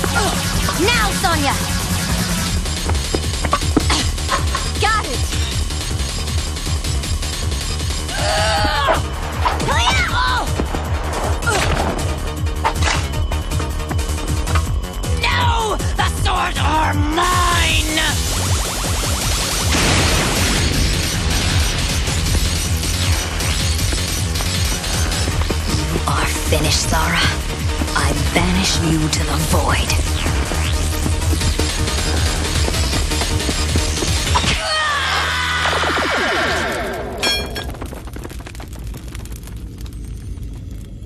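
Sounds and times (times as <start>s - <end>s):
dramatic cartoon soundtrack music: 0.0s - 37.2s
electric crackling: 17.6s - 34.4s, 35.6s - 41.0s.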